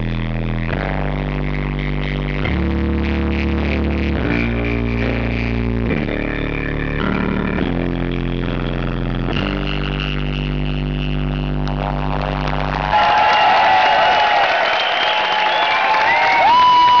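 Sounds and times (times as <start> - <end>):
crowd cheering and whistling: 12.7 - 17.0.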